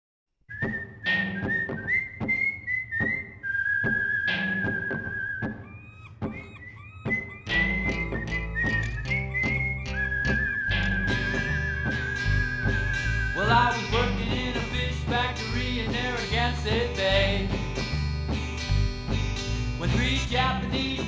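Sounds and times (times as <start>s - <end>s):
whistled melody: 0.5s - 16.2s
rhythmic backing with sharp strikes: 1.0s - 2.4s, 3.8s - 21.0s
bass part: 4.6s - 21.0s.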